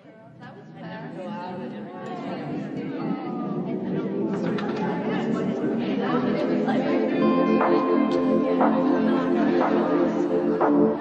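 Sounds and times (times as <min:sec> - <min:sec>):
babble of many people talking: 0:00.0 - 0:11.0.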